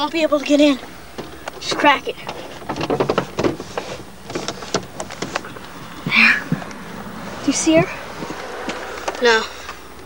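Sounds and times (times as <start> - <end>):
irregular clicks and rustles: 1.1 - 6.9
car window opening: 2.3 - 9.4.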